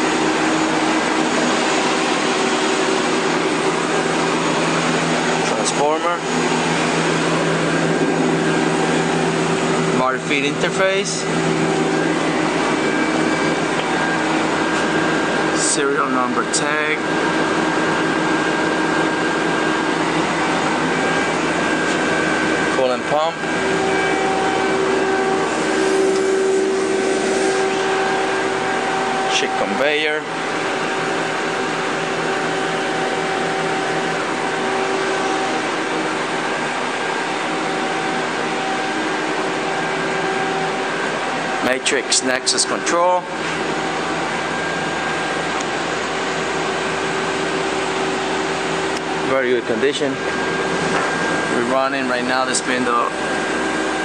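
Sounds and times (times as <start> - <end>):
shop machinery humming: 0.0 - 54.0.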